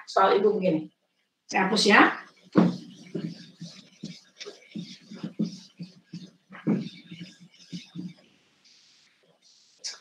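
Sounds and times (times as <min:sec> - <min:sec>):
eraser scrubbing a whiteboard: 0:01.7 - 0:10.0.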